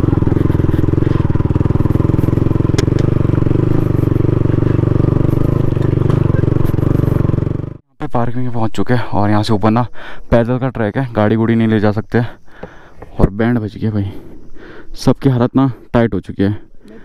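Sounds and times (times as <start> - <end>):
motorcycle engine running: 0.0 - 7.9.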